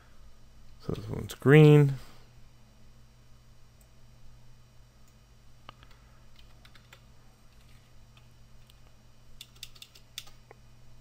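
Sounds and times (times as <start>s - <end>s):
keyboard keystroke clicks: 9.4s - 10.4s.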